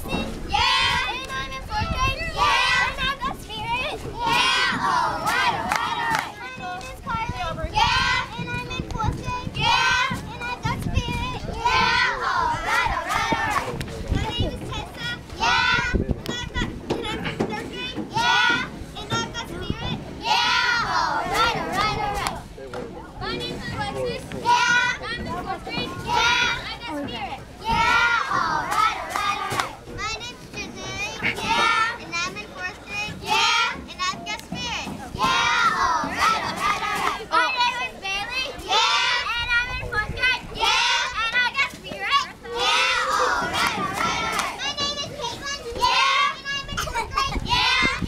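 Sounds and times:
girls shouting cheer chants: 0:00.4 - 0:08.4, 0:11.6 - 0:13.7, 0:20.2 - 0:22.3, 0:27.6 - 0:29.7, 0:40.4 - 0:46.7.

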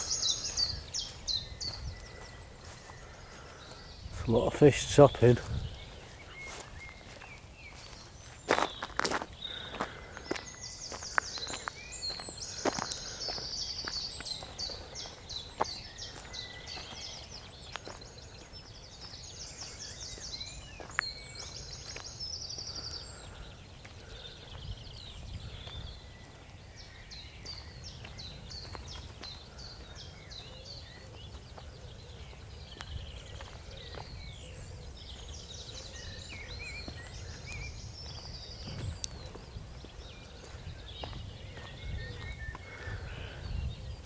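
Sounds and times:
footsteps on path: 0:00.0 - 0:44.0.

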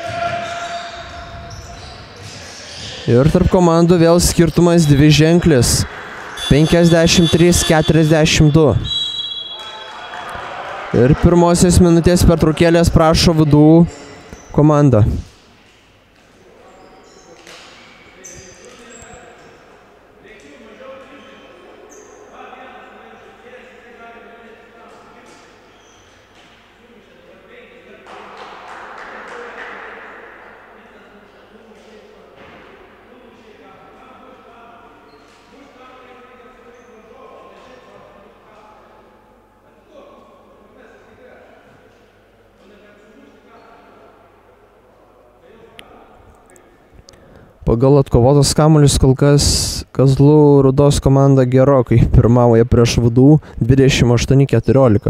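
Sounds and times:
basketball bouncing on wooden court: 0:00.1 - 0:02.9.

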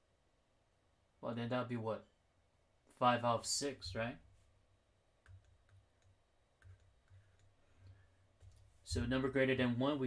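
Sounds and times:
stylus tapping on tablet screen: 0:05.2 - 0:08.8.

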